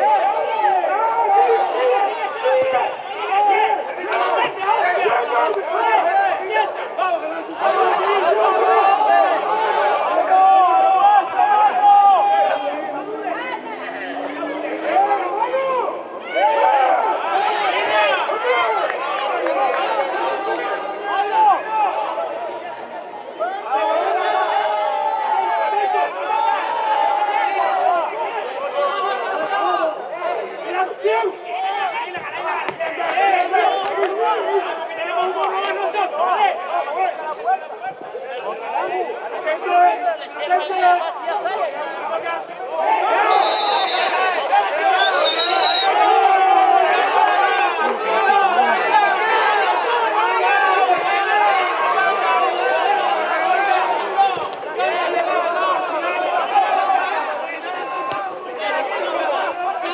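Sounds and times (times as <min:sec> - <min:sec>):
spectators chatting: 0:00.0 - 0:59.9.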